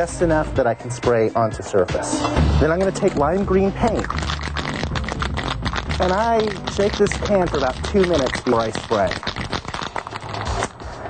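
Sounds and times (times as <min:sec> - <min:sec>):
spray can rattling when shaken: 0:02.6 - 0:11.0.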